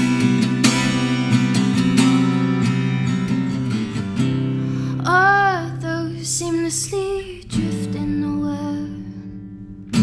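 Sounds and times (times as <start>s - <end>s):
acoustic guitar chords: 0.0s - 10.0s
woman singing: 4.9s - 9.4s.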